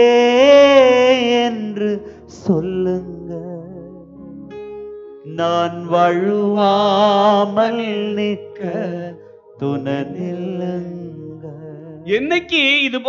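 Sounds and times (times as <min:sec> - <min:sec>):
man singing a chant: 0:00.0 - 0:03.8, 0:05.3 - 0:13.0
sustained keyboard chords: 0:00.0 - 0:13.0.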